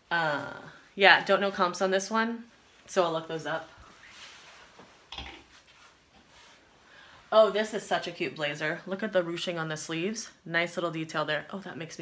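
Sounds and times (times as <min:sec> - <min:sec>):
fabric rustling: 0:02.4 - 0:07.8.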